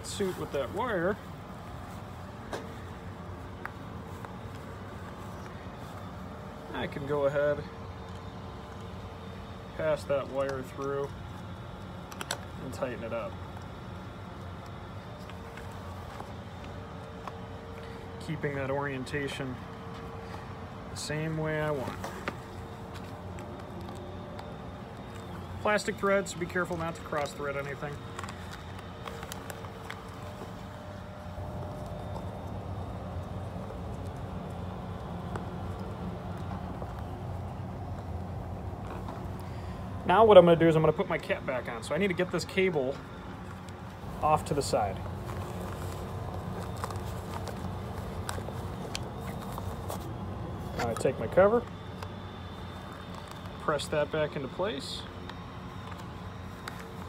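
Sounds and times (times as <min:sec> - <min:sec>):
low room hum: 0:00.0 - 0:57.0.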